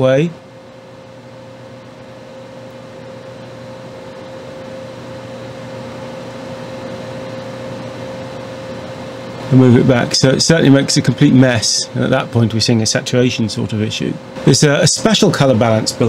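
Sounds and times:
fan whirr and hiss: 0:00.0 - 0:16.0
mid-pitched whine: 0:00.0 - 0:16.0.

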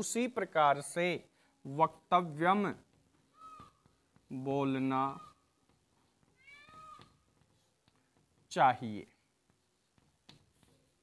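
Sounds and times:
man speaking: 0:00.0 - 0:02.8, 0:04.3 - 0:05.3, 0:08.5 - 0:09.2
faint cat meow: 0:06.4 - 0:07.2.

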